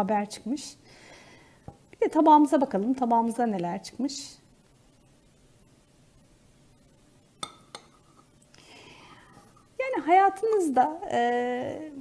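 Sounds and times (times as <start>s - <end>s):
saucer clinking against cup: 7.4s - 8.3s.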